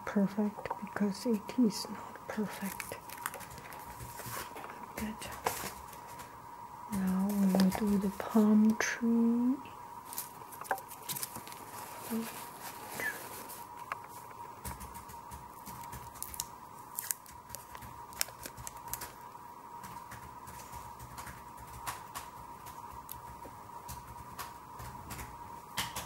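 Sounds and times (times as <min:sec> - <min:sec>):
faint high tone hum: 0:00.0 - 0:21.2
paper tissue rustling: 0:02.4 - 0:06.4, 0:07.0 - 0:08.7, 0:10.0 - 0:15.0, 0:15.6 - 0:19.3.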